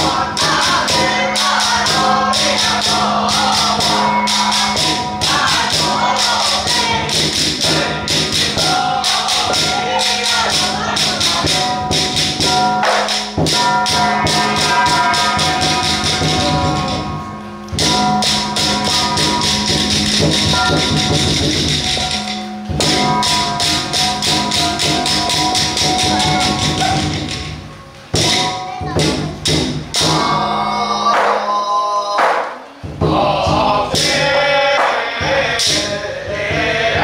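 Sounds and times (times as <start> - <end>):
steady metallic ringing: 0.0 - 31.7
gongs and cymbals beaten rapidly: 0.0 - 37.0.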